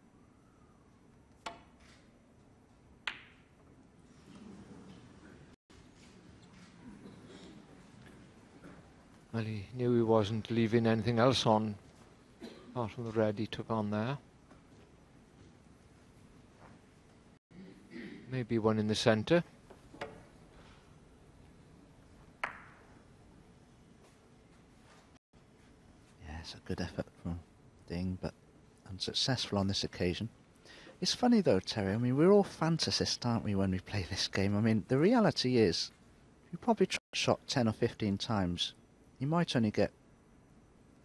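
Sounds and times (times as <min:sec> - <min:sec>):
snooker balls colliding click: 0:03.0 - 0:03.7, 0:22.4 - 0:23.0
cue striking ball click: 0:22.4 - 0:22.9.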